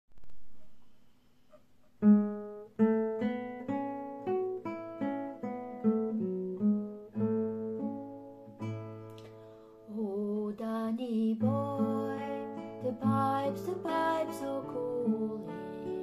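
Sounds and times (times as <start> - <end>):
fingerpicked classical guitar: 1.9 - 16.0.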